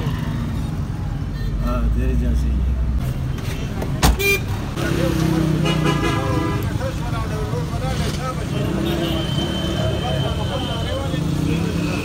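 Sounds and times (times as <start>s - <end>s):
road traffic rumble: 0.0s - 12.0s
people chattering: 3.4s - 12.0s.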